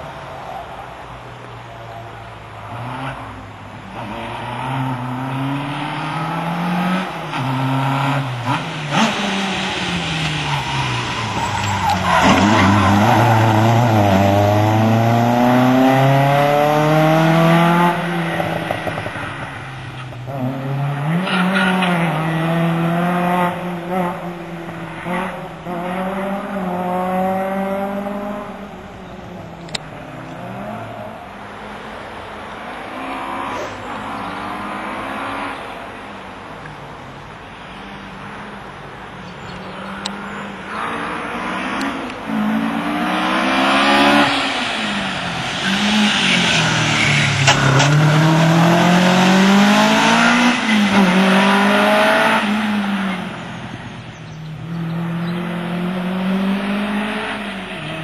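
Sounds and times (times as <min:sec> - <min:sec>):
car engine revving hard: 0:04.0 - 0:19.2, 0:40.8 - 0:53.5
another car engine rising: 0:04.0 - 0:28.6, 0:39.8 - 0:53.9.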